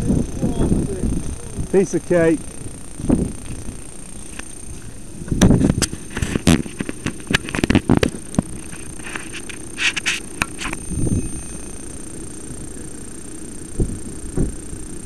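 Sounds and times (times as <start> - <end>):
steady low hum: 0.0 - 15.0
camera handling knocks and scrapes: 5.4 - 10.8.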